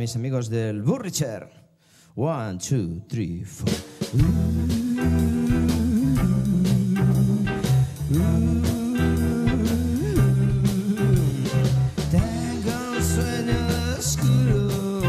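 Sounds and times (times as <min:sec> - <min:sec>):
drum kit beat: 0:03.7 - 0:15.0
electric bass: 0:03.7 - 0:15.0
electric guitar: 0:04.2 - 0:15.0.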